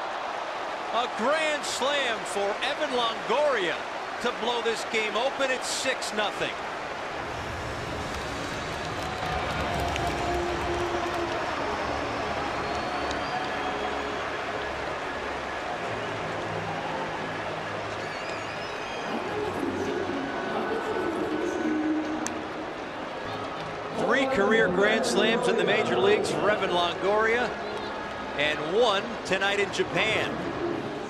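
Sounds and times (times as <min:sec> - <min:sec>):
crowd cheering and chatter: 0:00.0 - 0:31.0.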